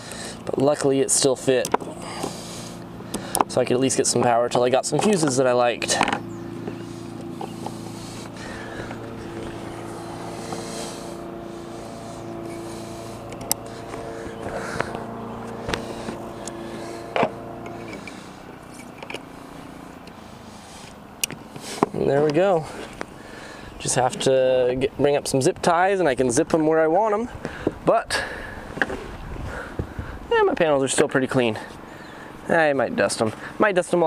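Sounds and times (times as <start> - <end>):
steady motor-like hum: 0.0 - 34.0.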